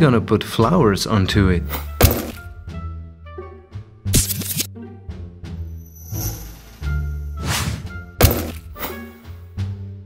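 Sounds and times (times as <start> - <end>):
light background music: 0.0 - 10.0
cartoon hammer knocks on wood: 8.2 - 8.6.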